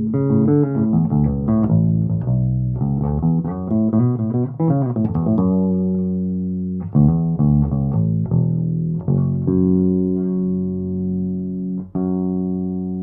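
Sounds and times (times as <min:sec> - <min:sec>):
plucked electric bass: 0:00.0 - 0:13.0.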